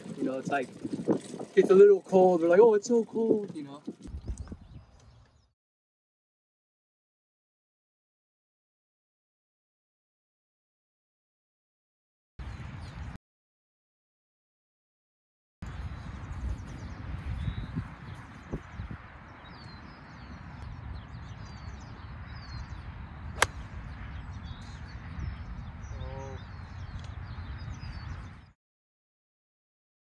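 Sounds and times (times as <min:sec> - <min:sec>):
wind on microphone: 0:00.0 - 0:05.5, 0:15.6 - 0:28.5
birds chirping: 0:15.6 - 0:28.5
golf club striking ball: 0:23.4 - 0:23.6.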